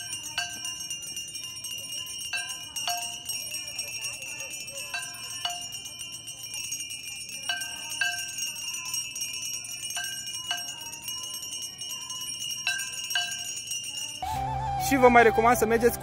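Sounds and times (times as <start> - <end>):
ceremonial bells ringing: 0.0 - 14.4
lower bell tones: 0.0 - 16.0.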